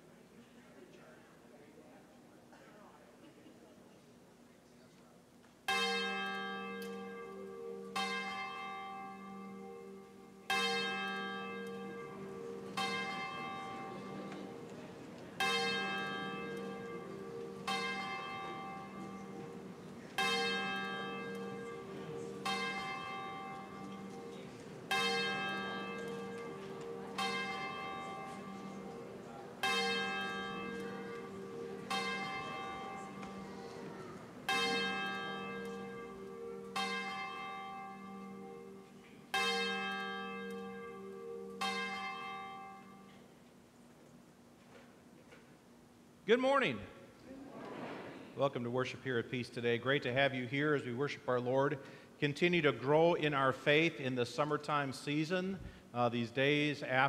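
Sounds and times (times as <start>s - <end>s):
church bell tolling: 5.6s - 43.4s.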